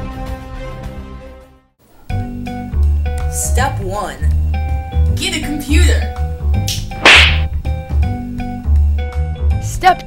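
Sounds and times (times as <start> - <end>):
whip-crack sound effect: 6.7 - 7.5.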